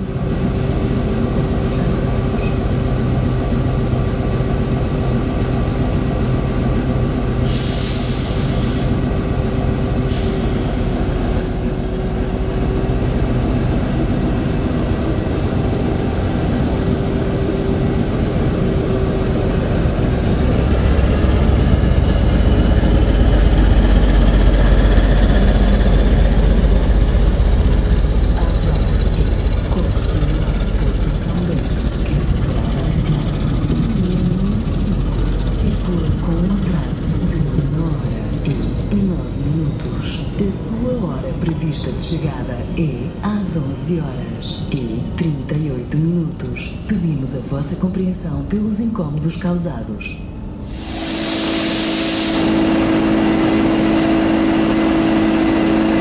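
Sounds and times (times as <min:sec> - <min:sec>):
diesel locomotive engine rumble: 0:00.0 - 0:56.0
hiss of air: 0:50.6 - 0:52.6.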